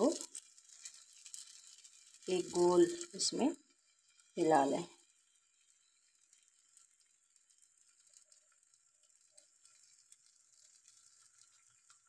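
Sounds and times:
batter sizzling on hot griddle: 0:00.0 - 0:12.0
small ticks: 0:00.0 - 0:12.0.

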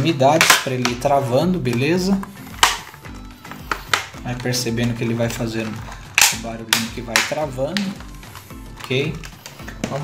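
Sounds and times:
plastic clips clicking into place: 0:00.4 - 0:10.0.

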